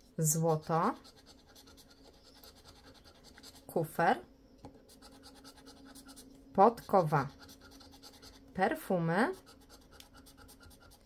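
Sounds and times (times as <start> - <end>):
scratching lottery ticket coating: 5.0 - 8.4.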